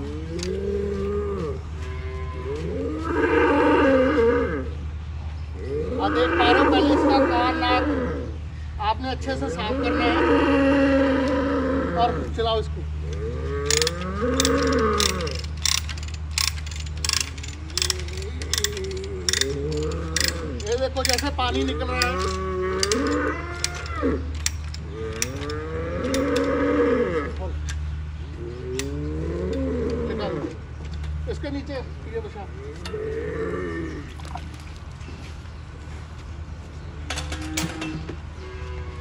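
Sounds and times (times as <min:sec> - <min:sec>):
cow mooing: 0:00.0 - 0:04.7, 0:09.5 - 0:12.4, 0:13.1 - 0:27.4
ratchet clicks: 0:13.7 - 0:26.6, 0:28.8 - 0:29.6.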